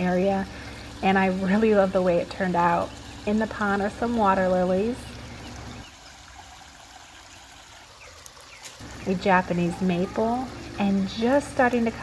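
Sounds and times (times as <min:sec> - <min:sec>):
small waterfall trickling: 0:00.0 - 0:12.0.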